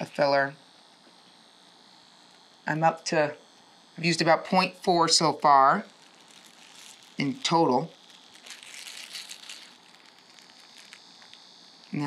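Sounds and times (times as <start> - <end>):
plastic sleeve crinkling: 5.4 - 12.0.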